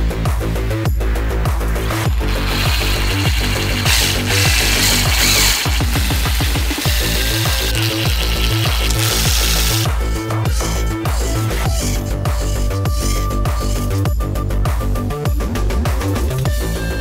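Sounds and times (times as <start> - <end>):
electronic music with steady beat: 1.0 - 15.6
cordless drill driving screws: 1.9 - 13.8.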